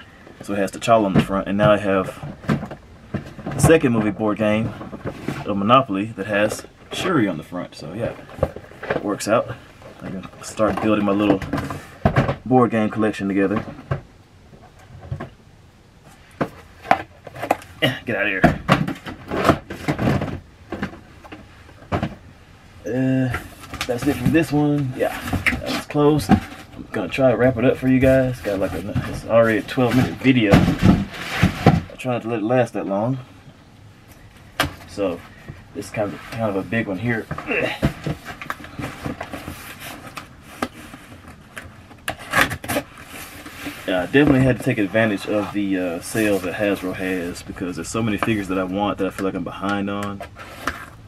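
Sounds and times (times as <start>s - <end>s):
packaging rubbing and scraping: 23.3s - 31.9s, 34.8s - 47.4s
scraping on cardboard: 27.6s - 31.9s.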